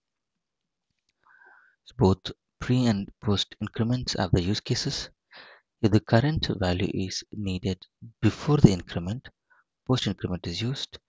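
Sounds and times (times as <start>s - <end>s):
person speaking: 1.9s - 5.1s, 5.8s - 9.3s, 9.9s - 10.9s
short breath through mouth: 5.3s - 5.6s.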